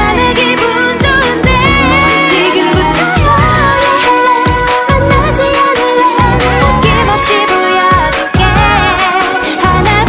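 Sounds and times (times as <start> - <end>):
bass: 0.0 - 10.0
woman singing: 0.0 - 10.0
drum beat: 1.0 - 10.0.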